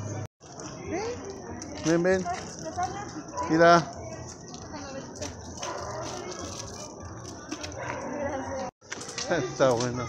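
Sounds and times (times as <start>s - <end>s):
children and adults chattering: 0.0s - 10.0s.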